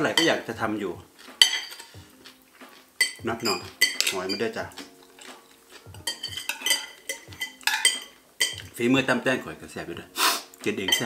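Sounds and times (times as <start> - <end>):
cutlery clinking on ceramic plate: 1.2 - 8.8.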